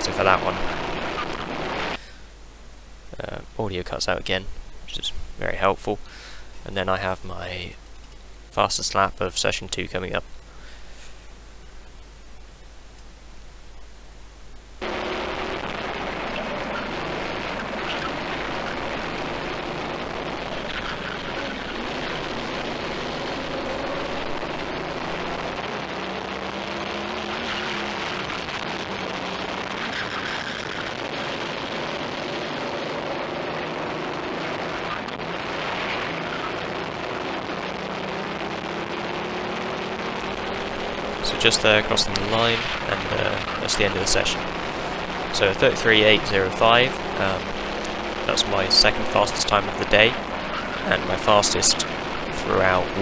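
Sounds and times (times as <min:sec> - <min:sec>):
racing kart engine: 0:00.0 - 0:02.0, 0:14.8 - 0:53.0.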